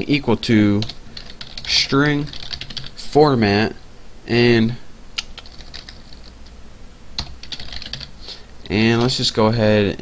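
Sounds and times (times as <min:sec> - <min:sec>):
typing on computer keyboard: 0:00.8 - 0:02.9, 0:05.2 - 0:06.3, 0:07.2 - 0:08.1.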